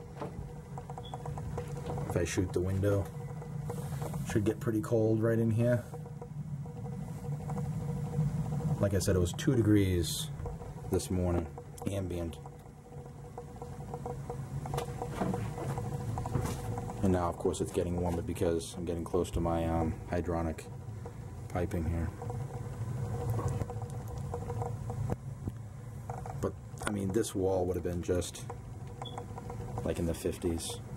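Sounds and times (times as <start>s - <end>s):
boiler humming: 0.0s - 30.9s.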